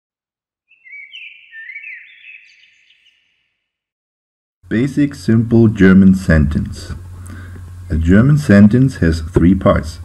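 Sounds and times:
birds chirping: 0.7s - 3.8s.

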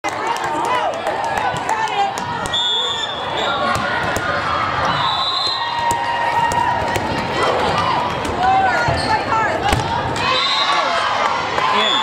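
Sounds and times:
babble and shouts of crowd: 0.0s - 12.0s
short whistle tones: 2.5s - 3.4s, 4.9s - 5.7s
volleyball slaps: 3.6s - 4.5s, 5.8s - 8.4s, 9.6s - 10.3s.

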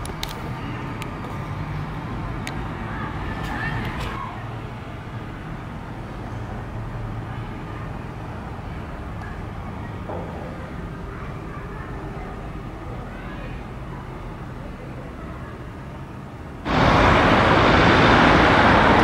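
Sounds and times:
faint background voices: 0.3s - 16.6s.

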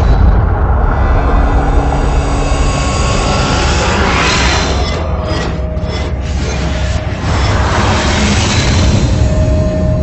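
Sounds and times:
deep rushing noise: 0.0s - 10.0s.

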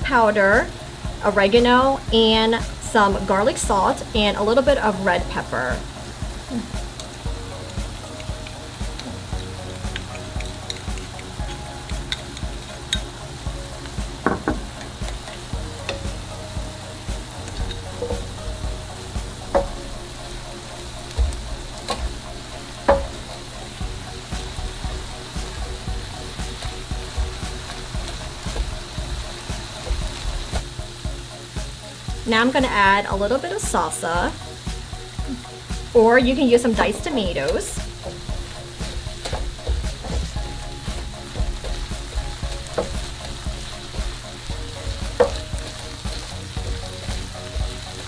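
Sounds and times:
meat sizzling in a frying pan: 0.0s - 48.0s
utensils tapping on a pan: 6.4s - 16.3s, 17.1s - 30.6s, 34.7s - 48.0s
spoon stirring meat: 6.9s - 16.3s.

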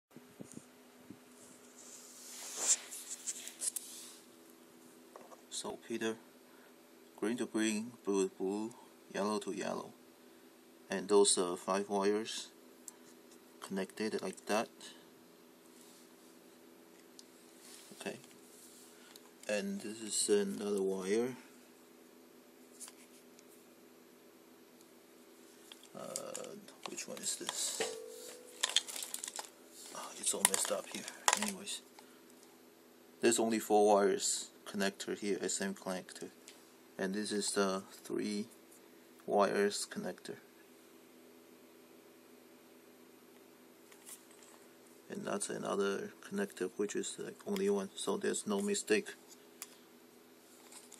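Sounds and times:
faint steady hum: 0.2s - 50.9s
cables rustling: 25.5s - 32.5s, 50.5s - 50.9s
plastic connectors clicking: 28.6s - 29.5s, 30.4s - 31.6s.

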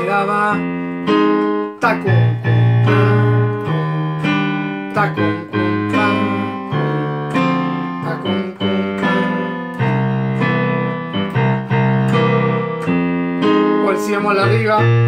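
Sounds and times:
piano playing chords: 0.0s - 15.0s.

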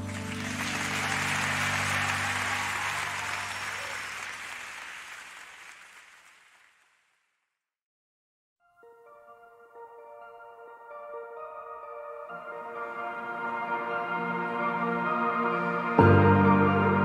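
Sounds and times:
audience applauding: 0.0s - 7.3s.

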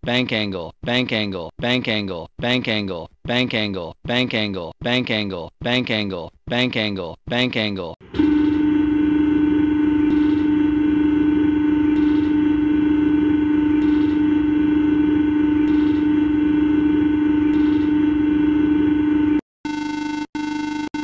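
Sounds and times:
steady electronic warning tone: 8.0s - 21.0s.

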